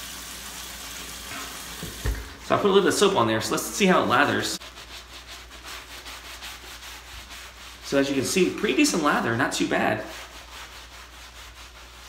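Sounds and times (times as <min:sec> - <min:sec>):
wash cloth rubbing on skin: 0:00.3 - 0:12.0.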